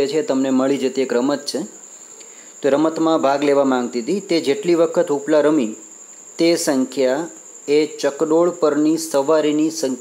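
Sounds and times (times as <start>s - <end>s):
person speaking: 0.0s - 10.0s
steady high-pitched whine: 0.0s - 10.0s.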